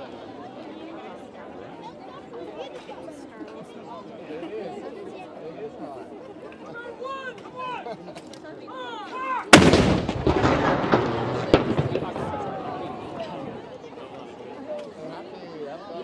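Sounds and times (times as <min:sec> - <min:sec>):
spectators chattering: 0:00.0 - 0:16.0
faint sharp crack: 0:09.5 - 0:13.5
howitzer firing boom: 0:09.5 - 0:13.6.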